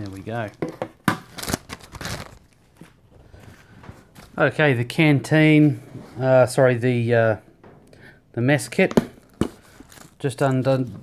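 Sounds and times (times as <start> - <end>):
plastic bag crinkling: 1.2 - 3.0, 9.2 - 10.9.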